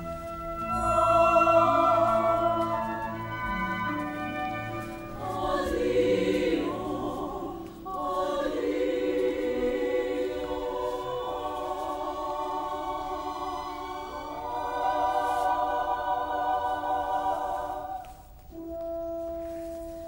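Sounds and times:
opera chorus singing: 0.0s - 18.4s.

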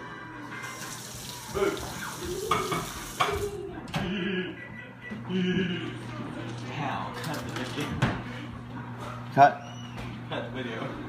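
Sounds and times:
water running from tap: 0.6s - 3.6s.

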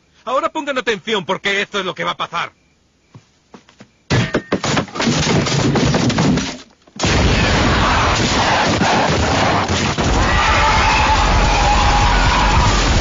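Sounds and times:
cartoon knocks and thuds: 4.1s - 6.6s
gunfire: 7.0s - 10.1s
explosions: 7.0s - 13.0s.

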